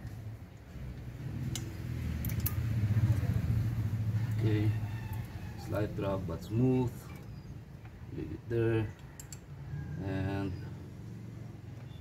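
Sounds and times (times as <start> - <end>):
light metallic tool clicks: 1.5 - 2.7.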